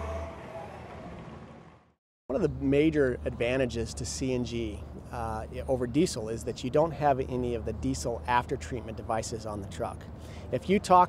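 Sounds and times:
road noise: 0.0s - 11.0s
vehicle engine rumble: 0.0s - 11.0s.

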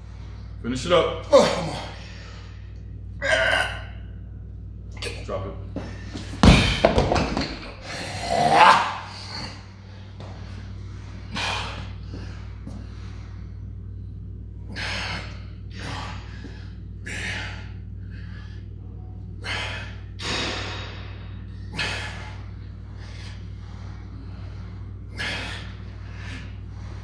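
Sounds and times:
voiced grunt: 1.3s - 2.0s, 3.2s - 4.0s, 8.0s - 9.6s
dumbbells dropped with thud: 6.3s - 7.8s
hard gasping breaths: 19.4s - 27.0s.

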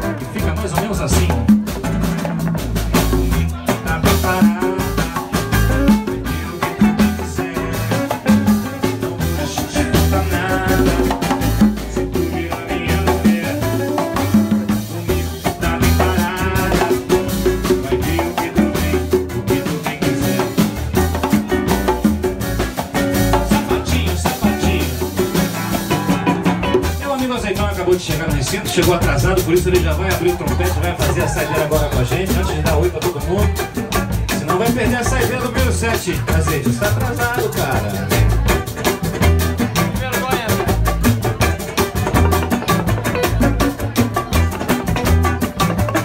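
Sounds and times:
acoustic guitar: 0.0s - 46.0s
drum kit beats: 0.0s - 46.0s
upright double bass: 0.0s - 46.0s.

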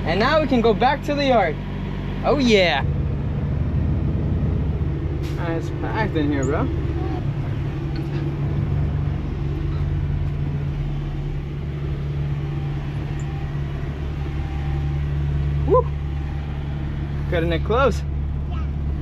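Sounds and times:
diesel truck engine running: 0.0s - 19.0s
person shouting woo: 15.6s - 16.0s.

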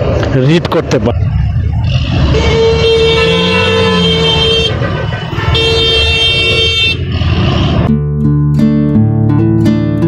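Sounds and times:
traffic engines rumbling: 0.0s - 8.2s
vehicle horn blasts: 2.2s - 7.8s.

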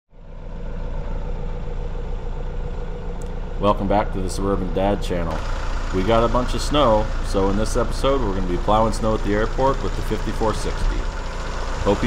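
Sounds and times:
tractor diesel engine idling: 0.2s - 12.0s.

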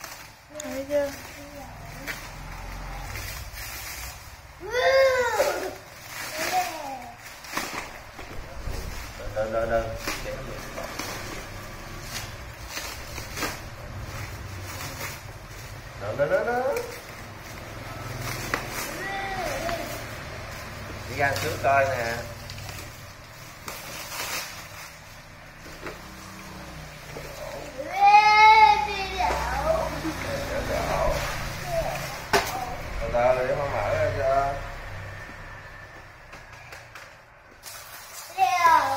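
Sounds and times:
plastic shrink-wrap crinkling: 0.0s - 33.4s, 36.4s - 38.9s
young child's voice: 0.5s - 2.3s, 4.6s - 7.2s, 18.8s - 20.1s, 27.7s - 30.2s, 31.5s - 33.0s, 38.2s - 38.9s.

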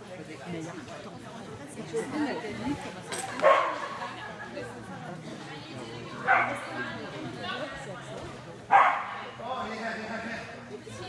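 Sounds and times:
dog barking sharply: 8.7s - 9.1s.

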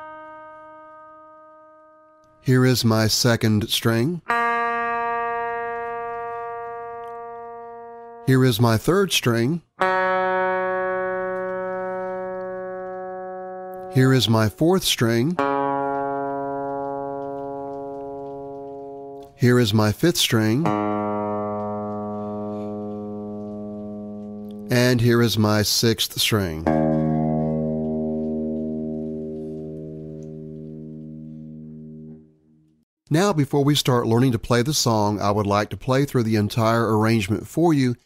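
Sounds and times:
open guitar string ringing: 0.0s - 2.4s, 4.3s - 8.5s, 9.8s - 19.6s, 20.2s - 25.6s, 26.5s - 32.8s.

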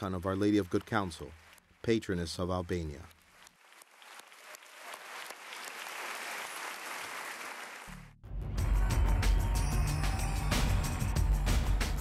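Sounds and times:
crowd applauding: 0.0s - 8.2s
loud music with heavy bass: 8.2s - 12.0s.

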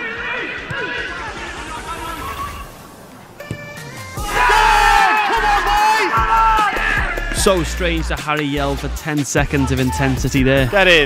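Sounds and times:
crowd shouting and cheering: 0.0s - 2.8s, 4.1s - 11.0s
background music: 0.5s - 11.0s
players calling out: 3.8s - 11.0s.

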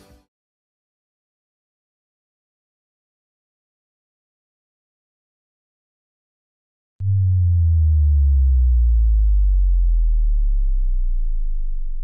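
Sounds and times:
deep synthesized bass tone: 7.0s - 12.0s.

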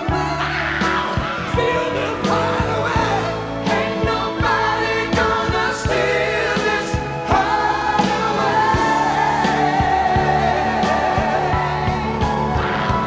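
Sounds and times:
man singing: 0.0s - 13.0s
rock band playing: 0.0s - 13.0s
steady drum beat: 0.0s - 13.0s.

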